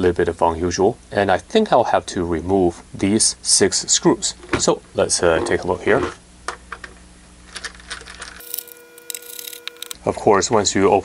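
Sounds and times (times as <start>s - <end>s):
faint steady tones: 8.4s - 10.0s.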